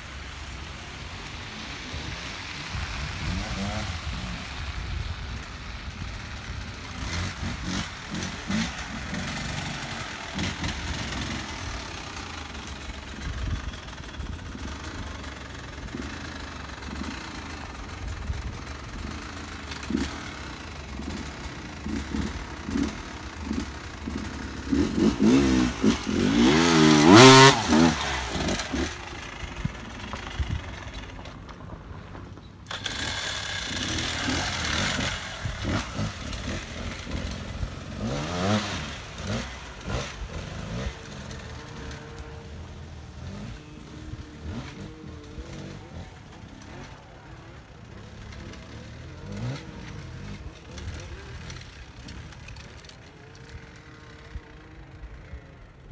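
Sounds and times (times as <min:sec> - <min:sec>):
dirt bike engine revving: 0:00.0 - 0:31.2, 0:32.7 - 0:55.5.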